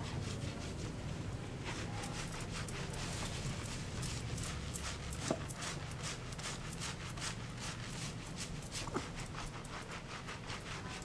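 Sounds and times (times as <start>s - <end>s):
hands scrubbing lathered hair: 0.1s - 11.0s.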